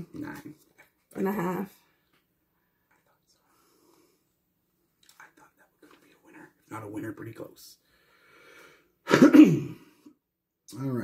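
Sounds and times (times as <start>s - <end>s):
man clearing his throat: 9.0s - 10.0s.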